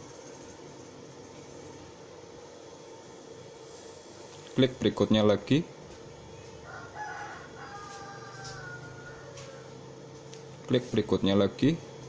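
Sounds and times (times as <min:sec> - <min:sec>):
rooster crowing: 0:06.4 - 0:10.1.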